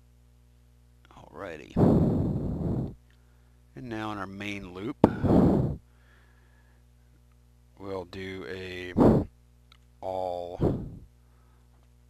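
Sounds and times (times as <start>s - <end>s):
faint low hum: 0.0s - 12.0s
person breathing out: 1.8s - 3.5s, 5.0s - 6.8s, 9.0s - 9.3s, 10.6s - 11.7s.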